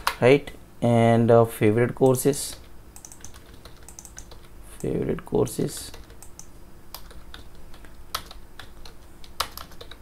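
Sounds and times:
typing on computer keyboard: 0:03.0 - 0:04.9, 0:05.8 - 0:10.0.

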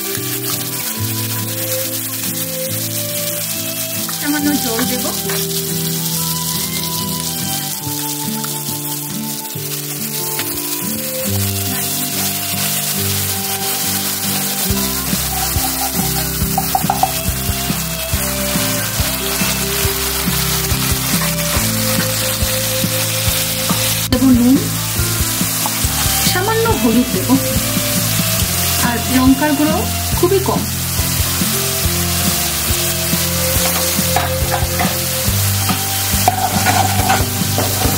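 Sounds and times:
background music: 0:00.0 - 0:37.9
paste sizzling in oil: 0:00.0 - 0:37.9
spatula scraping pan: 0:11.8 - 0:17.2, 0:33.5 - 0:37.9.

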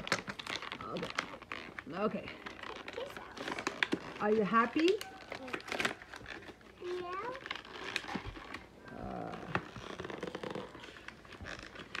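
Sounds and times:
rustling and crinkling: 0:00.0 - 0:12.0
child's high-pitched vocal sounds: 0:06.8 - 0:07.5.

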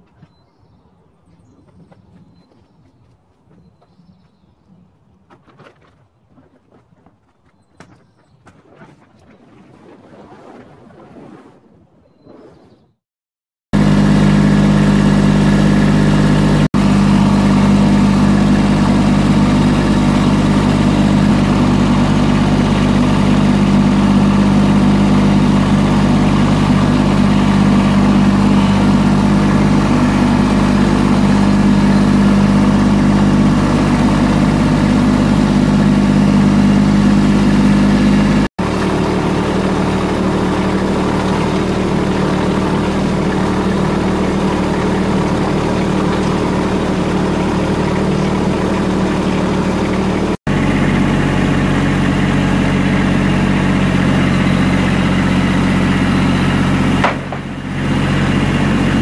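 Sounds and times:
tractor engine running: 0:13.7 - 0:59.0.

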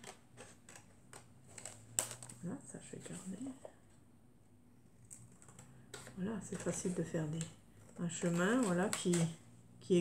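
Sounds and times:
scissors snipping paper: 0:06.5 - 0:09.4.

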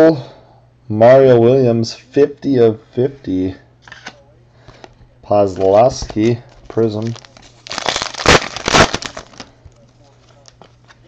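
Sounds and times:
foil wrapper crinkling: 0:06.2 - 0:11.0.

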